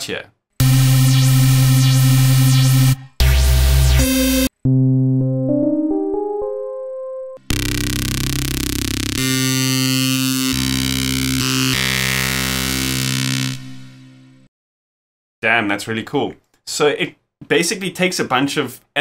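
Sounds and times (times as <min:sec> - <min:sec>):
buzzy synthesizer lead: 0:00.6 - 0:05.7, 0:07.4 - 0:14.5
synthesizer rising run of notes: 0:00.6 - 0:14.5.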